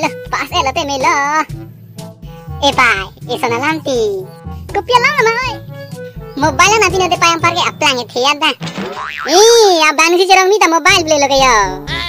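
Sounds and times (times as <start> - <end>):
sped-up cartoon voices speaking: 2.5 - 5.6, 6.3 - 8.6.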